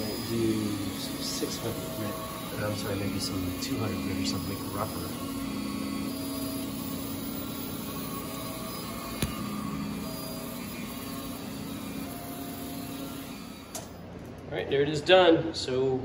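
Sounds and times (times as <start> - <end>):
printer hum: 0.0 - 13.9
stepper motor whines: 0.0 - 14.0.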